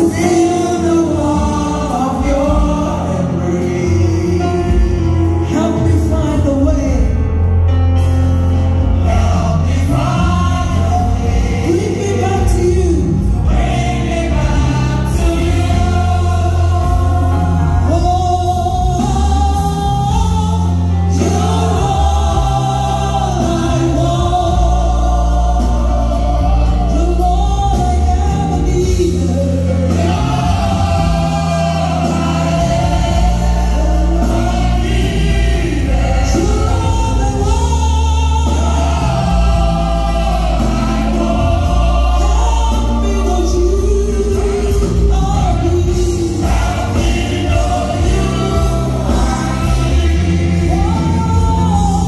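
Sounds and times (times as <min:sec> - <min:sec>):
band accompaniment: 0:00.0 - 0:52.0
group singing gospel: 0:00.0 - 0:52.0.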